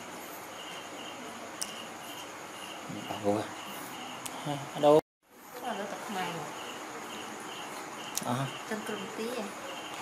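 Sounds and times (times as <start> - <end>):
high insect-like chirping: 0.0 - 10.0.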